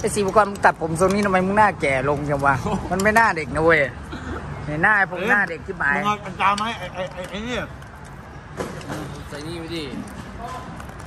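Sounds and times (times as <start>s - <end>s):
street traffic hum: 0.0s - 11.0s
men chatting: 5.2s - 8.0s, 8.6s - 10.8s.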